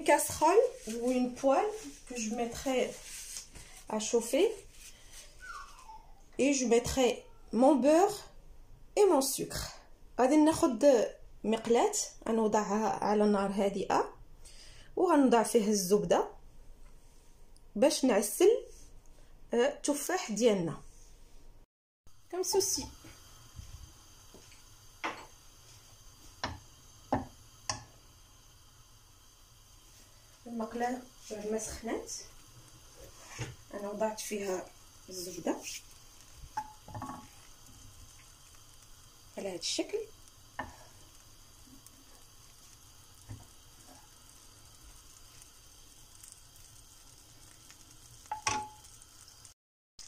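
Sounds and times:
butter popping in frying pan: 22.7s - 29.8s, 30.6s - 49.6s
wooden spatula knocking pan: 26.4s - 27.9s, 36.6s - 37.3s, 48.3s - 48.9s.

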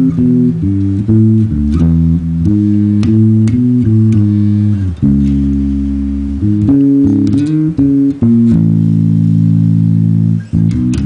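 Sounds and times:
electric bass notes: 0.0s - 11.0s.

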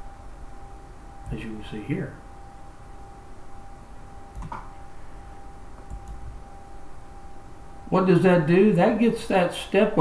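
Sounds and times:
faint high-pitched hum: 0.0s - 10.0s
soft computer mouse clicks: 4.3s - 4.7s, 5.8s - 6.2s.

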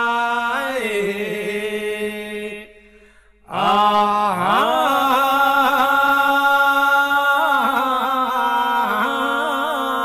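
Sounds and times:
men singing unaccompanied: 3.5s - 10.0s.

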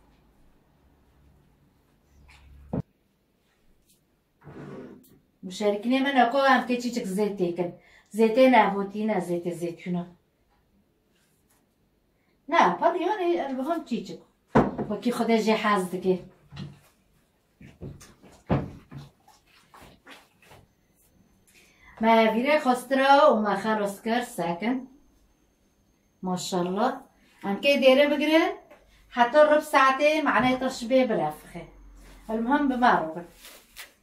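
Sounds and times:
hands kneading dough in bowl: 17.6s - 20.8s.

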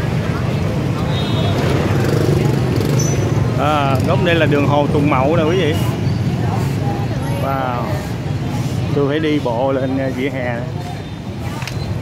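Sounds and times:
crowd chatter: 0.0s - 12.0s
motorbike and car traffic: 0.0s - 12.0s.

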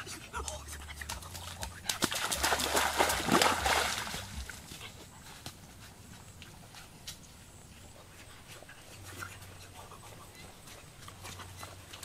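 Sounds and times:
wading through shallow water: 0.3s - 4.8s.

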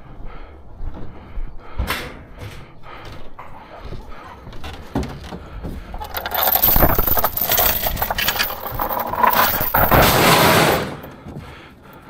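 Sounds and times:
chain rattling and clanking: 5.8s - 11.2s.

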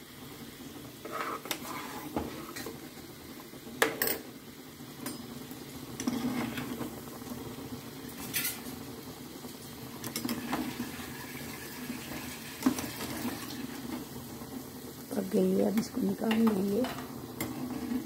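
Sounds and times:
fritters sizzling in oil: 0.0s - 18.0s.

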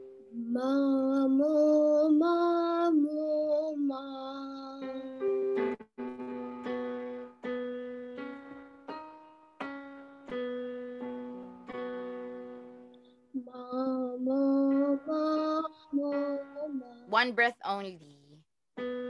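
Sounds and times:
person singing warm-up notes: 0.0s - 5.7s, 12.5s - 17.2s
piano notes: 3.4s - 17.1s, 18.8s - 19.0s.

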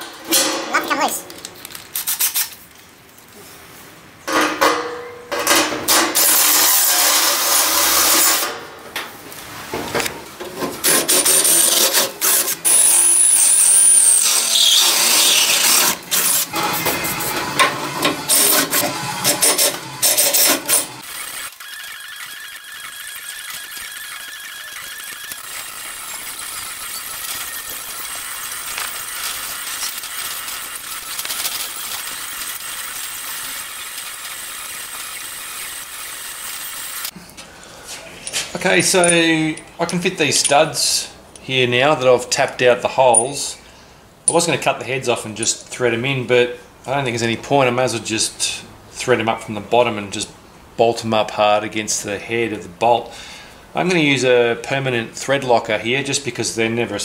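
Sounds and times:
cordless drill drilling sheet metal: 6.2s - 8.5s, 10.8s - 37.1s
high squeal: 21.6s - 27.8s.

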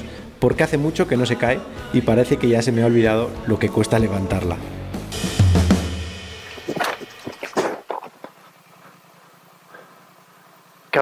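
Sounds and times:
motorcycle crashing onto stones: 6.6s - 8.2s.

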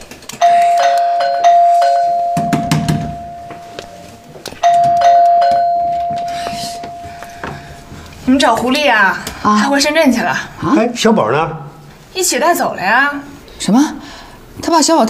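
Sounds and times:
electronic doorbell chime: 0.4s - 7.4s.

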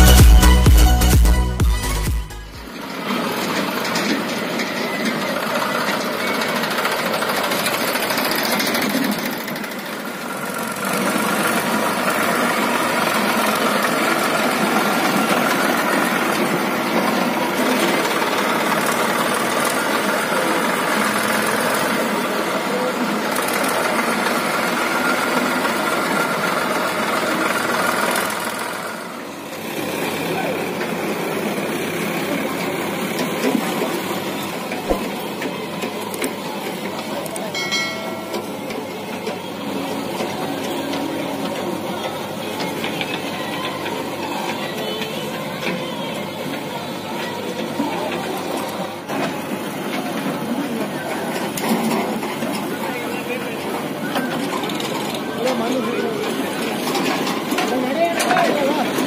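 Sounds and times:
tractor diesel engine running: 0.0s - 59.0s.

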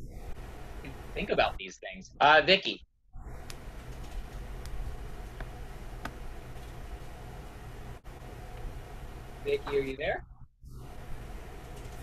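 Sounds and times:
low rumble with hiss: 0.0s - 12.0s.

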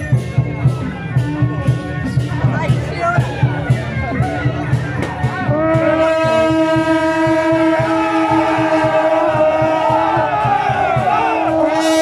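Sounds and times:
low drumbeat: 0.0s - 12.0s
crowd shouting: 2.0s - 12.0s
long steady horn tone: 5.4s - 10.0s, 11.4s - 12.0s.

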